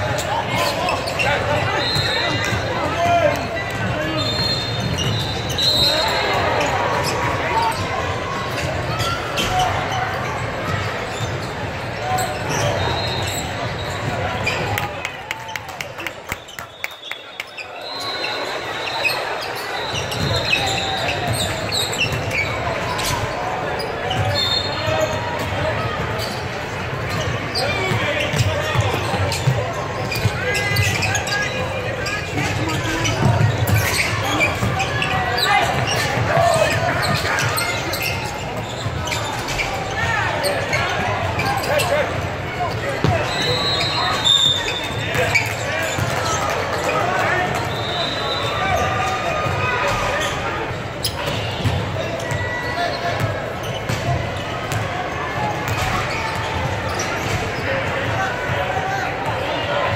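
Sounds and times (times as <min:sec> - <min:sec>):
people talking and calling out: 0:00.0 - 0:59.9
basketball bouncing on court: 0:27.0 - 0:31.4, 0:32.4 - 0:39.6, 0:45.1 - 0:46.5, 0:51.2 - 0:52.5, 0:53.2 - 0:55.0.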